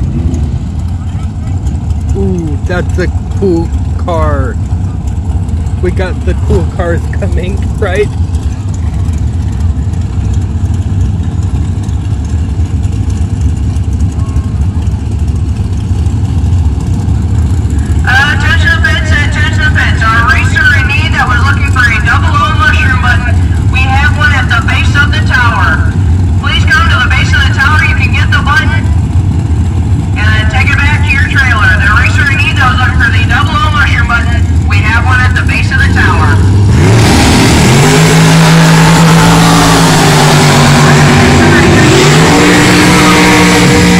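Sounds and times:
engines rumbling: 0.0s - 43.9s
race engine revving: 0.0s - 43.9s
person talking: 2.1s - 4.6s, 5.8s - 8.1s.

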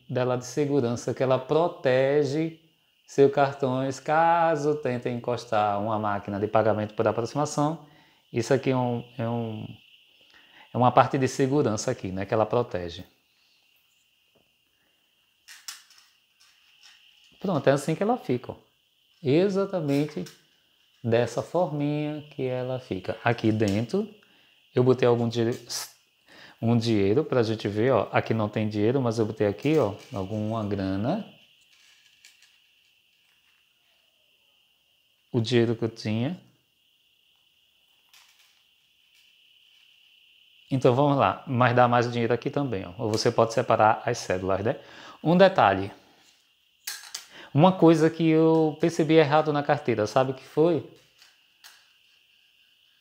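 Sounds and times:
faint high-pitched hum: 0.0s - 53.0s.

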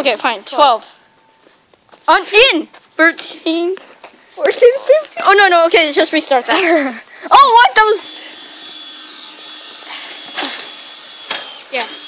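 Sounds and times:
power tool whining: 7.4s - 12.0s.

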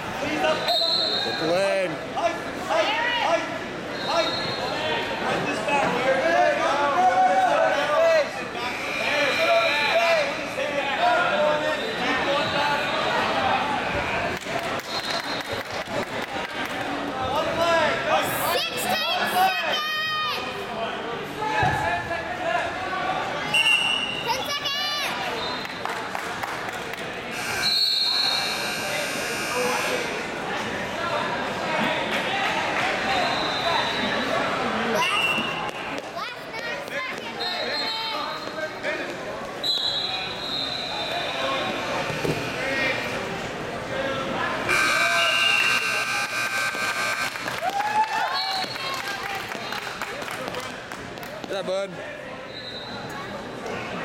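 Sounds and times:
spectators and coaches shouting: 17.6s - 20.7s
sustained high tones: 44.7s - 47.4s.

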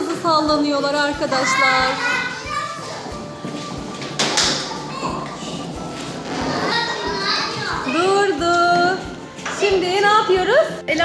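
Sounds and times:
play area noise: 0.0s - 10.8s
faint background music: 0.0s - 11.0s.

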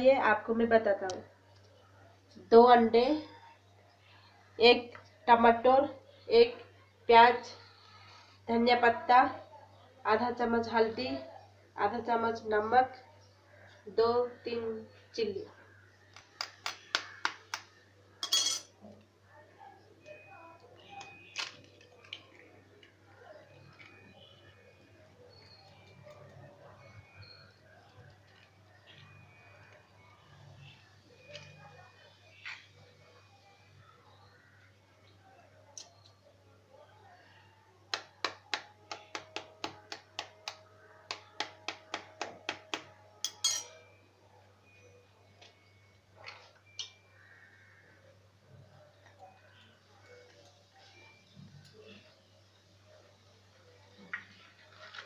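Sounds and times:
eggshell cracking: 16.1s - 17.7s
spoon clinking in metal tumbler: 18.2s - 18.7s, 43.2s - 44.0s.

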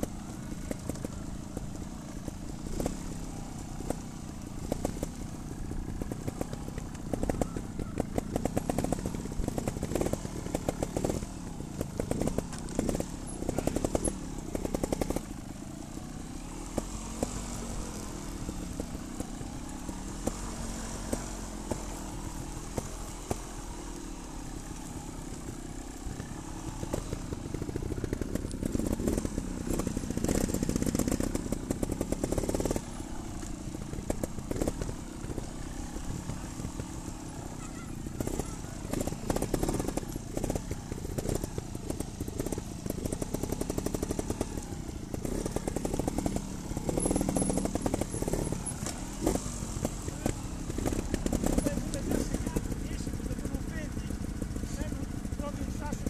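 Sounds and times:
motorcycle engines revving: 0.0s - 56.0s.

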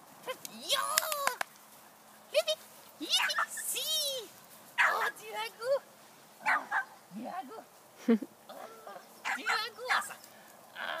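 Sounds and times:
puppy yipping: 4.8s - 5.2s, 6.4s - 6.9s.

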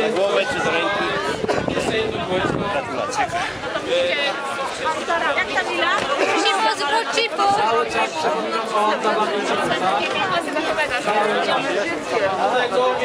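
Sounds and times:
babble of conversation: 0.0s - 13.0s.

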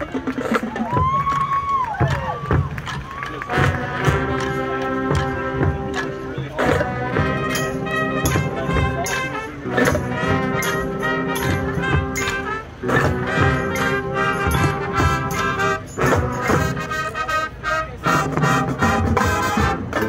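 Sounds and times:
steady drum beat: 0.0s - 17.3s, 18.0s - 20.0s
brass chords: 3.4s - 20.0s.

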